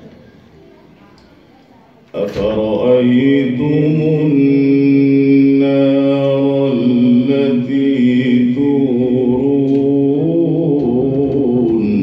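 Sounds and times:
man chanting melodically: 0:02.1 - 0:12.0.

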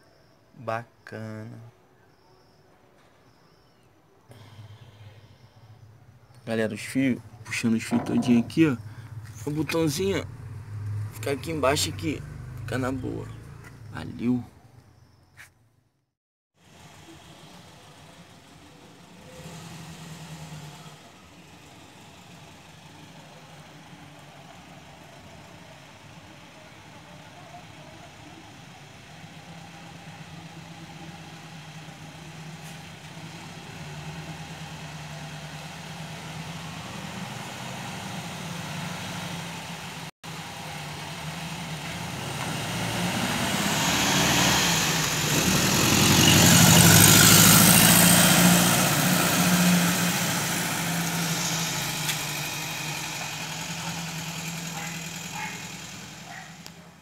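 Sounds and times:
car driving past: 0:04.3 - 0:13.9, 0:28.4 - 0:57.0.

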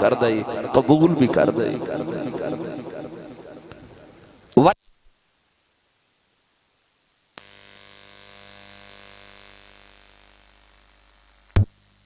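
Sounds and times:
electrical mains hum and hiss: 0:00.0 - 0:12.0.

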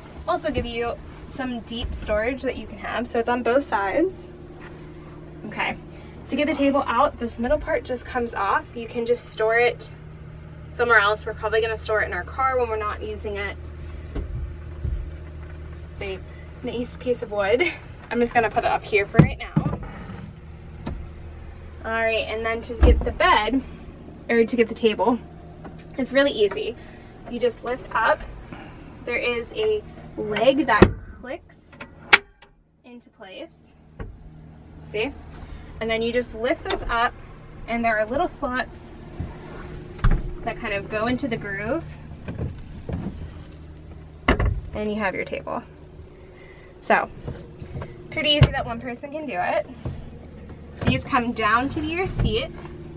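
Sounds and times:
steady low hum: 0:00.0 - 0:52.9.

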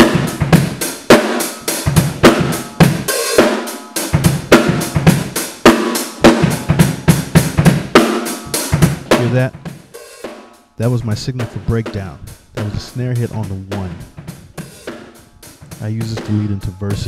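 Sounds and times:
snare drum: 0:00.0 - 0:17.0.

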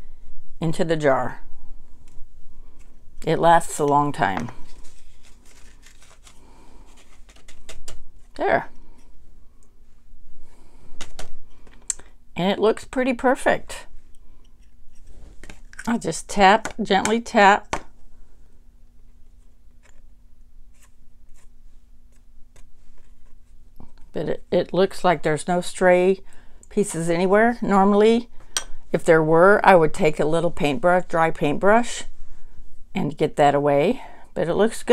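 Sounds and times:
paper handling: 0:04.5 - 0:08.4
powder clicking and tapping on paper: 0:07.3 - 0:08.0.

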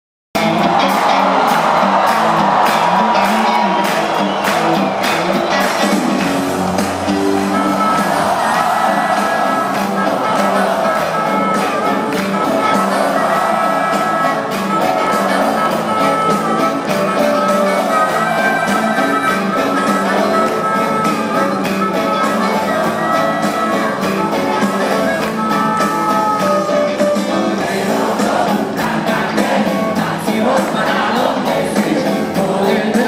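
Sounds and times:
crowd singing and shouting: 0:00.4 - 0:33.0
live rock band playing: 0:00.4 - 0:33.0
harmonica: 0:00.7 - 0:32.3.

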